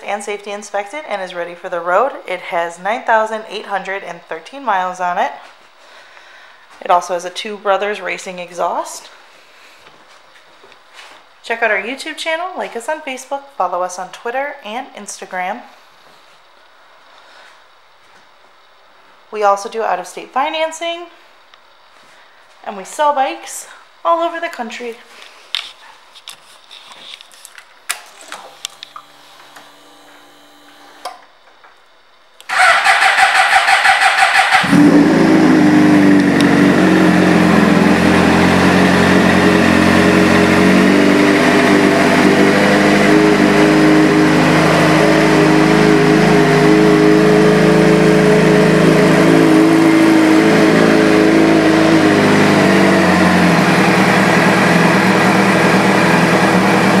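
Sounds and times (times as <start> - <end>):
motorcycle starter cranking: 32.5 - 36.7
motorcycle engine idling: 32.5 - 43.1.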